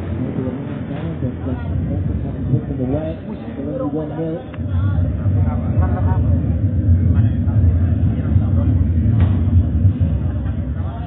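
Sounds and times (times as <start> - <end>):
faint indistinct voices: 0.0 - 11.0
loud low rumble: 0.0 - 11.0.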